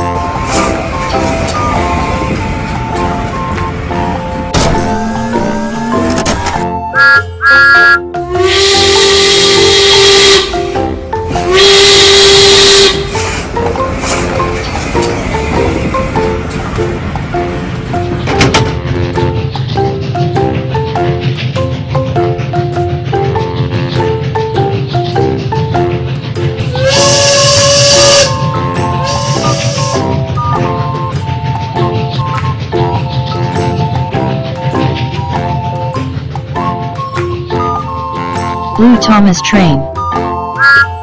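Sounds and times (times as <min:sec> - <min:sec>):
steam locomotive whistle: 0:06.9 - 0:10.8, 0:11.4 - 0:13.3, 0:26.7 - 0:32.5, 0:40.5 - 0:41.0
background music with mallets and drums: 0:16.8 - 0:26.8, 0:30.0 - 0:41.0.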